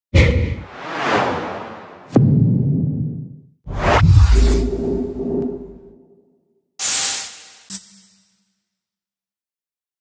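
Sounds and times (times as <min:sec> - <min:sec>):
whoosh: 0:00.6 - 0:05.9
deep bang: 0:02.1 - 0:04.3.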